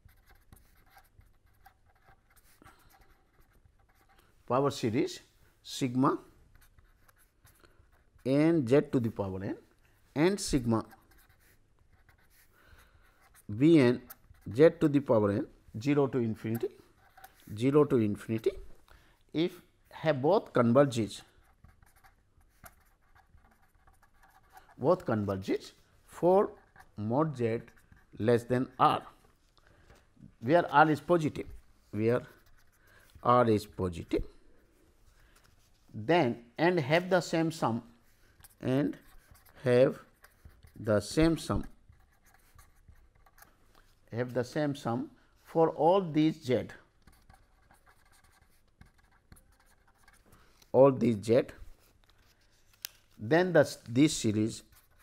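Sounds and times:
pen scratching on paper: 0.0 - 4.3, 6.5 - 9.1, 10.4 - 15.1, 16.1 - 17.6, 21.0 - 25.8, 26.4 - 29.1, 30.5 - 33.1, 38.4 - 43.6, 46.9 - 50.3, 54.3 - 55.0
man speaking: 4.5 - 6.3, 8.2 - 9.6, 10.2 - 11.0, 13.5 - 16.8, 17.5 - 18.7, 19.3 - 21.3, 24.8 - 29.2, 30.2 - 32.4, 33.2 - 34.3, 35.9 - 37.9, 38.6 - 39.0, 39.6 - 40.1, 40.8 - 41.7, 44.1 - 46.8, 50.7 - 51.6, 53.2 - 54.7.

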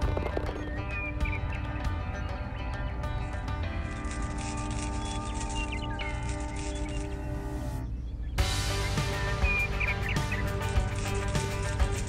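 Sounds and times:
music with sustained notes: 0.0 - 12.0.

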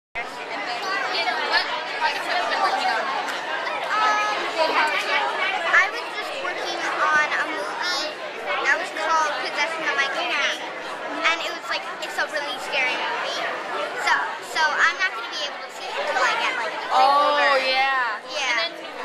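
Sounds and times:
crowd chatter: 0.2 - 19.0
people speaking: 0.2 - 19.0.

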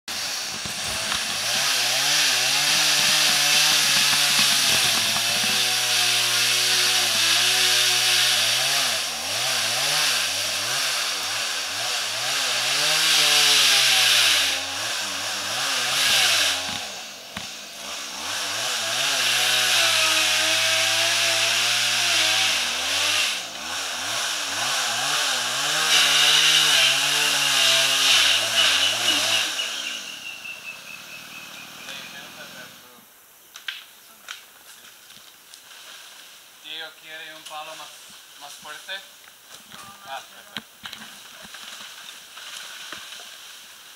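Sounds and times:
chainsaw cutting bamboo: 0.1 - 32.9, 39.5 - 43.9.

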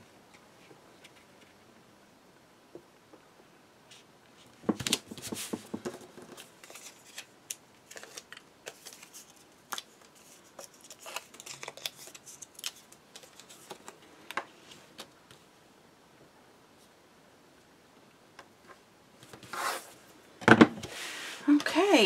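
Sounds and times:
cardstock rustling and scraping: 3.9 - 7.3, 7.9 - 15.1, 19.4 - 20.0.

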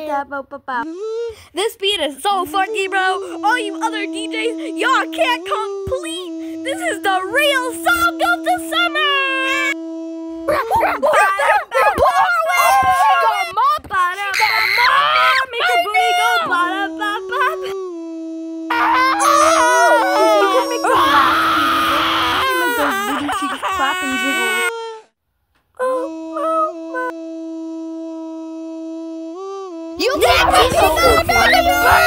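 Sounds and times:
person wailing wordlessly: 2.2 - 25.1, 25.8 - 32.0.

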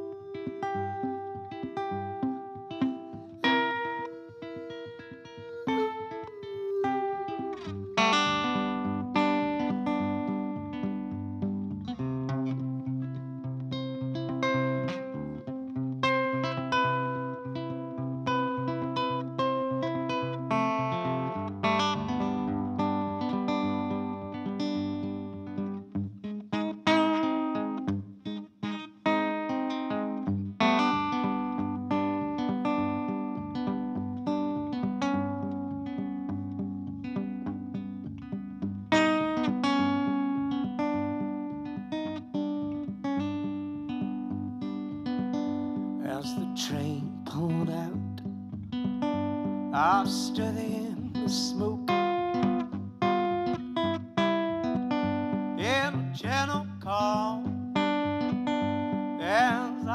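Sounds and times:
solo guitar playing melody and bass: 0.0 - 59.9.

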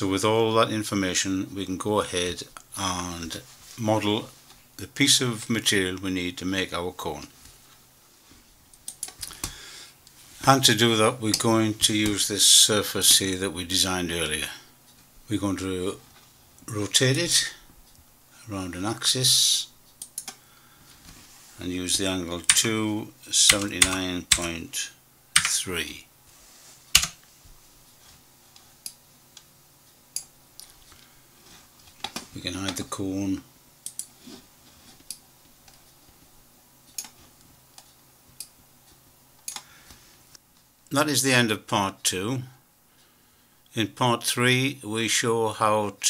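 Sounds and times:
keyboard keys clicking: 25.4 - 25.6.

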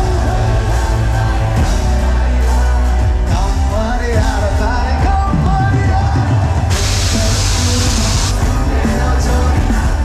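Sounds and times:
crowd noise: 0.0 - 10.0
live band playing: 0.0 - 10.0
smoke jet hissing: 6.7 - 8.4.

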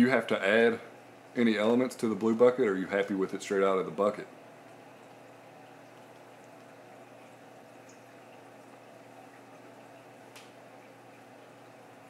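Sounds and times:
low pump hum: 0.0 - 12.0
water moving through aquarium: 0.0 - 12.0.

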